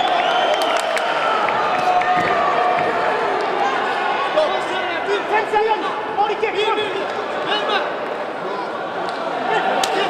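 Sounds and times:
crowd shouting: 0.0s - 10.0s.

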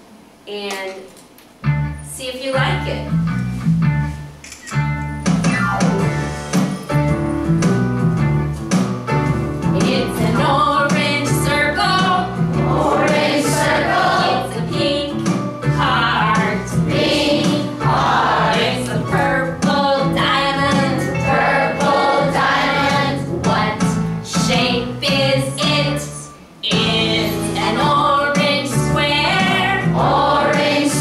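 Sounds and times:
musical accompaniment: 1.6s - 31.0s
group singing children's song: 9.8s - 15.1s, 15.8s - 24.8s, 26.7s - 31.0s.

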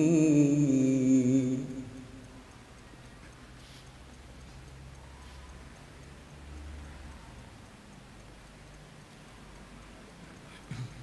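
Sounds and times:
faint evenly spaced ticking: 0.0s - 6.5s, 7.3s - 10.5s
low steady hum: 0.0s - 11.0s.

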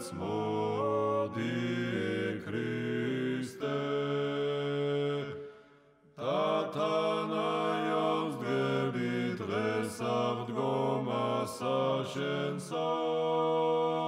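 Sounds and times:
sung church chant: 0.0s - 14.0s.

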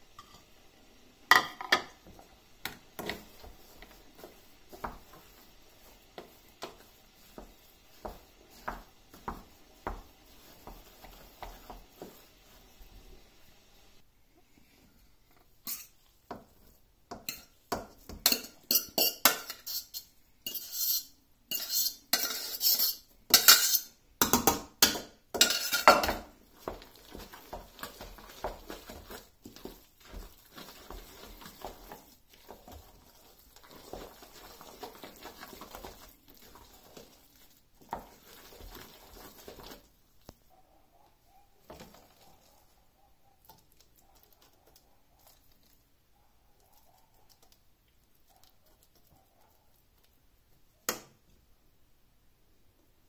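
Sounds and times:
metal utensils clinking against pot: 17.2s - 26.3s.

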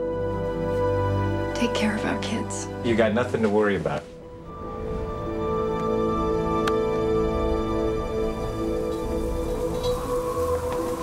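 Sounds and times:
film score sustained tones: 3.0s - 11.0s.

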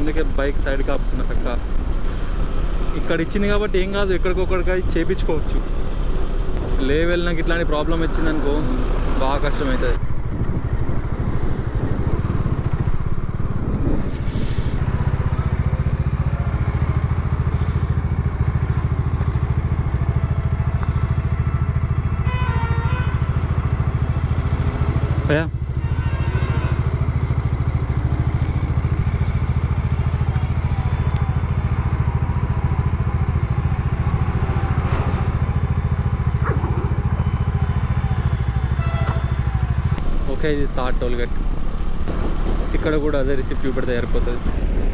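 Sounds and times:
motorcycle engine idling: 0.0s - 44.9s.

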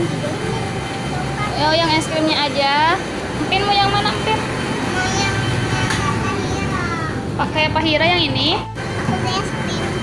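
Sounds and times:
young child's voice: 4.9s - 7.2s, 9.1s - 10.0s.

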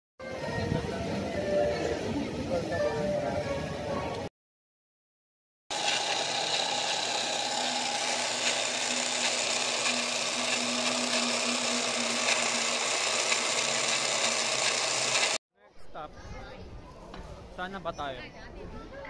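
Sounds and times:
harsh rasping noise: 5.7s - 15.4s.

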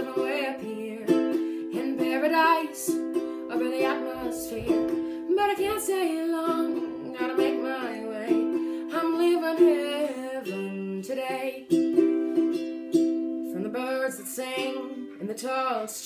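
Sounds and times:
strummed ukulele: 0.0s - 16.0s
woman singing: 0.0s - 16.0s.

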